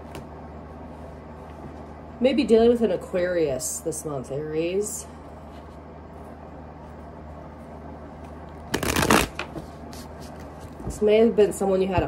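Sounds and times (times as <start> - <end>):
cards being shuffled: 8.6 - 10.8.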